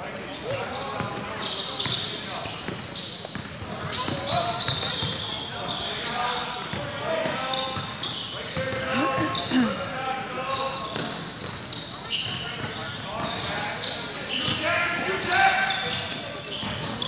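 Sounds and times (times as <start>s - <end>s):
sneakers squeaking: 0.0s - 17.0s.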